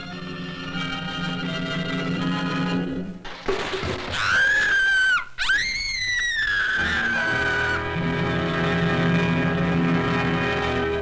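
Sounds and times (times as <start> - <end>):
shrill wailing cry: 4.1 - 8.1.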